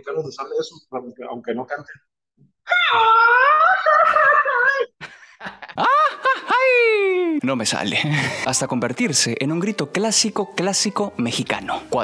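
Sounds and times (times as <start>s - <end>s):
men yelling and yelping: 5.8s - 7.6s.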